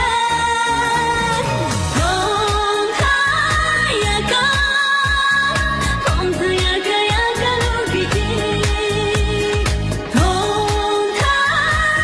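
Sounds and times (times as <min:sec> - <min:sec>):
pop song with wavering vocals: 0:00.0 - 0:12.0
steady drum beat: 0:01.5 - 0:12.0.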